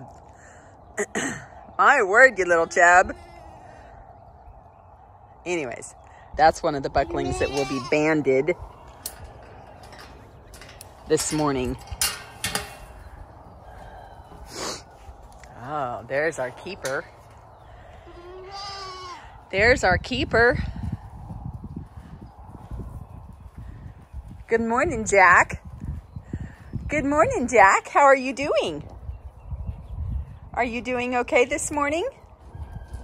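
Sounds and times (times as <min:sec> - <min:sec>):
goat kid bleating: 0:07.1 - 0:08.1, 0:18.1 - 0:19.3.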